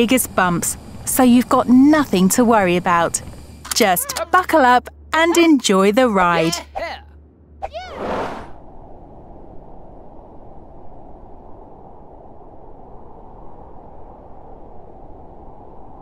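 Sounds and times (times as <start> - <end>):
airliner cabin rumble: 0.0 - 6.4
short whoosh: 7.6 - 9.2.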